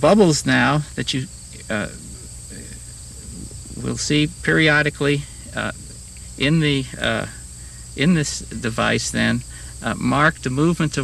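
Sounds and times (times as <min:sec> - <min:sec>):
insects trilling: 0:00.0 - 0:11.0
low hum: 0:00.0 - 0:11.0.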